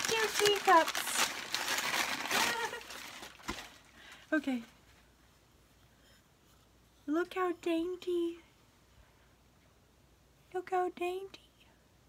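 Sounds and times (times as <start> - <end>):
packing paper rustling: 0.0 - 4.8.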